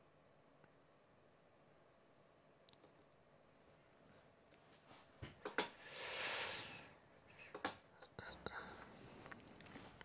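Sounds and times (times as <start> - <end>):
faint high chirps: 0.0 - 4.6
breath drawn in: 5.8 - 6.9.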